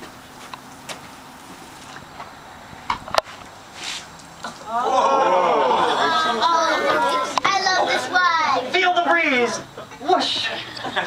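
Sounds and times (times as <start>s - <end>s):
voices: 3.9s - 11.0s.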